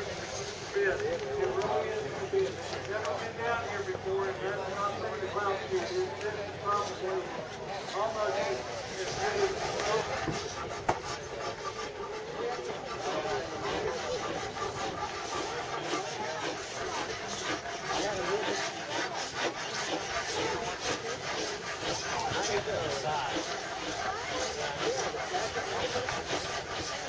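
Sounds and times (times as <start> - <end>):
hand tools scraping wood: 0.0 - 27.0
people talking: 0.0 - 27.0.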